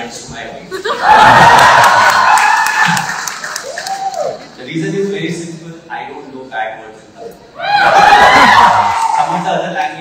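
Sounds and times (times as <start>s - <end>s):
audience cheering and clapping: 1.0s - 4.6s, 7.6s - 9.4s.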